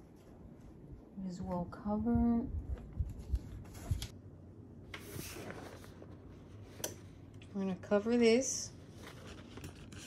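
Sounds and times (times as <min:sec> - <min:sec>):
paper rustling: 0:04.9 - 0:06.6, 0:08.8 - 0:10.0.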